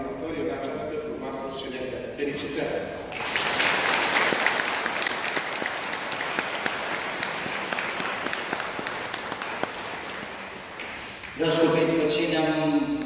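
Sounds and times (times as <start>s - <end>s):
audience applauding: 3.1s - 11.6s.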